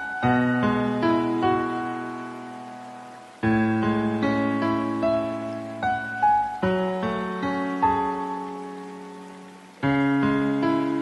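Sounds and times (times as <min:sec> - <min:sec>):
slow soft piano chords: 0:00.0 - 0:11.0.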